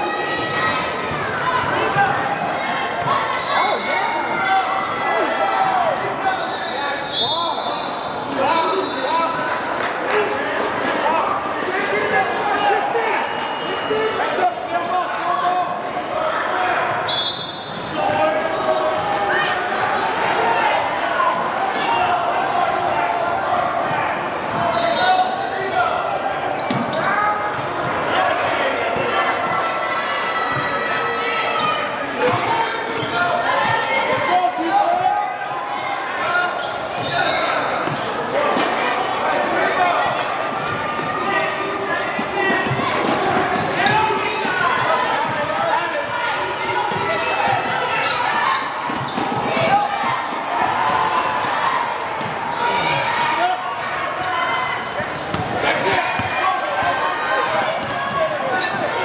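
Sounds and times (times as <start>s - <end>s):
chatter and shouts: 0.0s - 59.0s.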